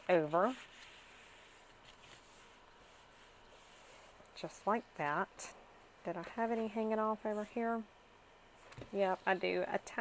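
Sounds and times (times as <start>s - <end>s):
paper rubbing: 0.0s - 4.2s.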